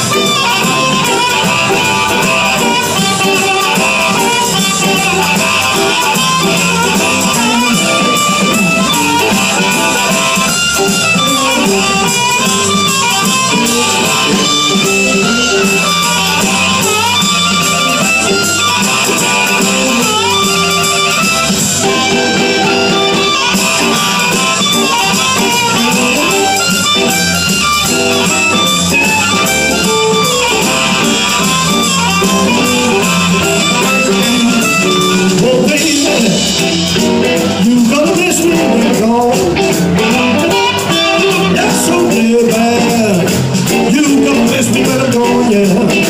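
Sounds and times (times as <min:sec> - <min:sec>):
bass guitar: 0:00.0 - 0:46.0
blues harmonica: 0:00.0 - 0:46.0
drum kit: 0:00.0 - 0:46.0
electric guitar: 0:00.0 - 0:46.0.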